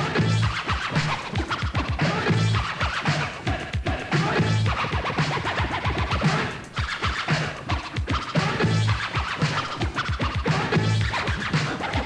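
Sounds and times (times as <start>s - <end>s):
bass line: 0.0s - 2.8s, 3.4s - 5.0s, 8.4s - 11.3s
electro hip-hop track: 0.0s - 12.0s
turntable scratching: 0.0s - 12.0s.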